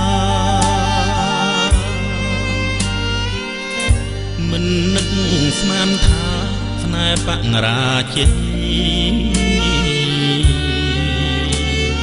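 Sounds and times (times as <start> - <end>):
man singing: 0.0 - 2.4, 4.3 - 12.0
band accompaniment with bass: 0.0 - 12.0
drum hit: 6.0 - 6.5.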